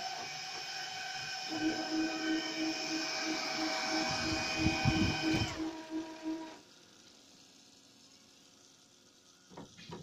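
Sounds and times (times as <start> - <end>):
printer machinery whine and pulse: 0.0 - 6.6.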